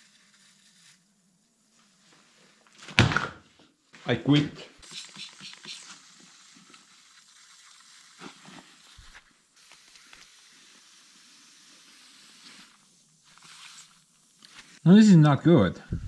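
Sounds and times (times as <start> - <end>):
hiss of air leaking through foam: 4.8 - 14.8.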